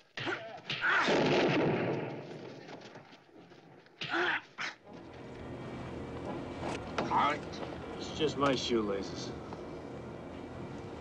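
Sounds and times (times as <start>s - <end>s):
gunshot bang: 1.0s - 2.2s.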